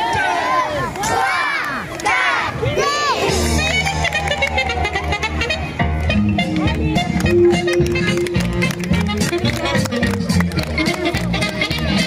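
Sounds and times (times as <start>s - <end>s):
music with steady bass: 3.2s - 12.0s.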